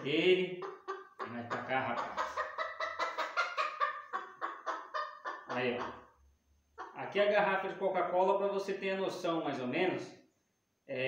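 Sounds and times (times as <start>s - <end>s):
rooster clucking rapidly: 0.0s - 6.1s.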